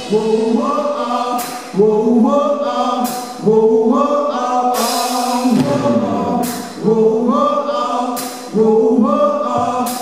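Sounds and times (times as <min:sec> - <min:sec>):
voices singing in harmony: 0:00.0 - 0:10.0.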